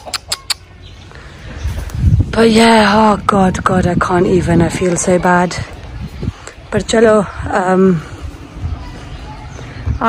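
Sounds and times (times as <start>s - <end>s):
chicken clucking: 0.0s - 0.7s.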